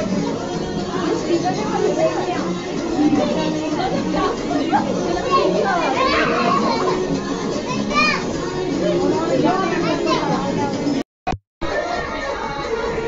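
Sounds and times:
children shouting and chattering: 0.0s - 11.0s, 11.6s - 13.0s
music: 0.0s - 11.0s, 11.6s - 13.0s.

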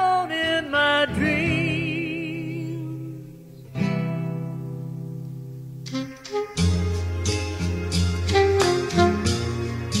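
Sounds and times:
acoustic guitar chords strummed: 0.1s - 10.0s.

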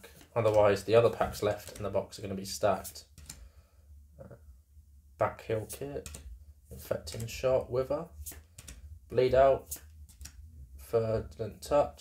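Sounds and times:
cards being shuffled: 0.0s - 2.0s, 2.7s - 3.4s, 8.1s - 8.8s, 9.6s - 10.4s
steady low hum: 0.0s - 12.0s.

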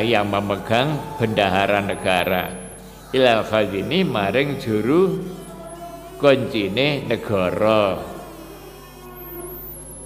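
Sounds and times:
soft background music drone: 0.0s - 10.0s.

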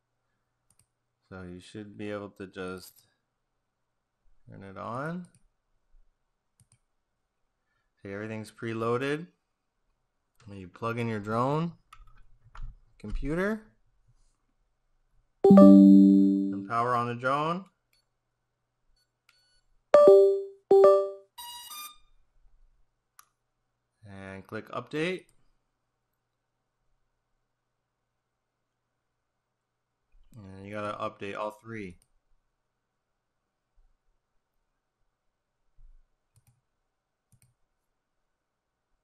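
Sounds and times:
bright high chime: 15.5s - 16.7s, 20.0s - 21.2s
short electronic beeps: 15.5s - 16.7s, 20.0s - 21.2s.

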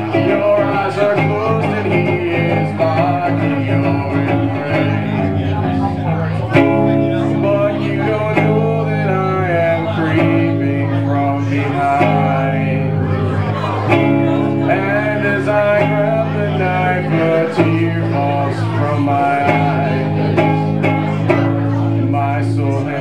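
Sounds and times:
acoustic guitar strumming chords: 0.0s - 23.0s.

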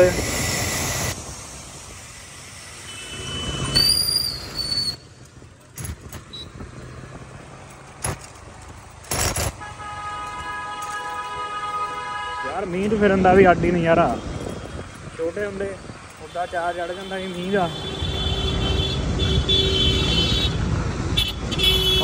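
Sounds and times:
traffic on wet street: 0.0s - 22.0s
vehicle horns: 2.8s - 5.0s, 9.1s - 15.1s, 16.2s - 22.0s.

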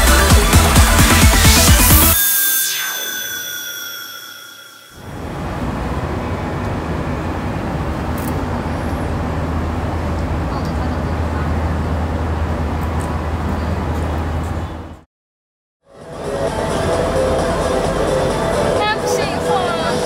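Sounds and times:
electronic dance music: 0.0s - 5.0s, 16.0s - 20.0s
traffic rumble: 5.1s - 15.0s.

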